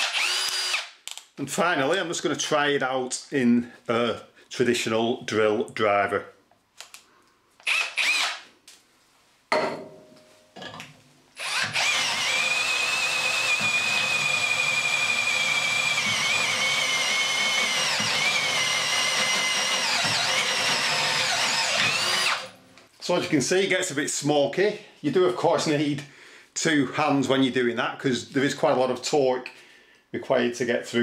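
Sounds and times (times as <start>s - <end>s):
drill cutting through steel: 0.0s - 1.0s, 7.6s - 8.4s, 11.4s - 22.6s.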